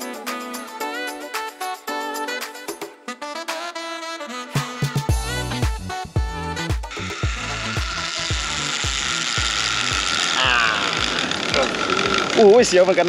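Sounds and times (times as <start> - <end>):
background music with beat: 0.0 - 10.2
zipline pulleys whirring on cable: 6.8 - 13.0.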